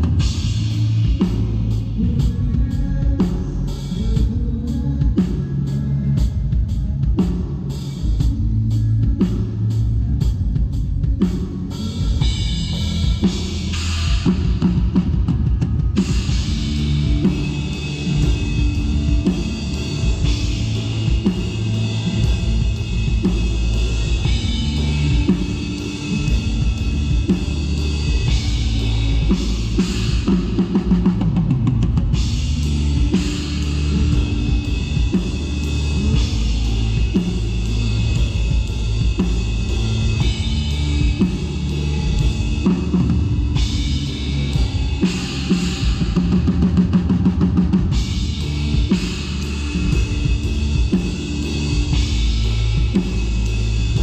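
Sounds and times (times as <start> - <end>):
bass line: 0.0 - 54.0
drum kit playing: 0.0 - 54.0.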